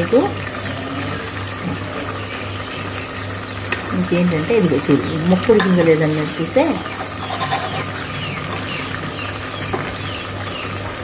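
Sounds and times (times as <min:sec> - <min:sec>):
ladle stirring in a pot: 0:05.4 - 0:10.0.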